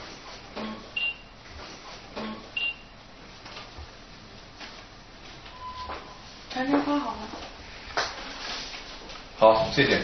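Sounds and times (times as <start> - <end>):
fax machine short high beep: 5.5 - 6.2.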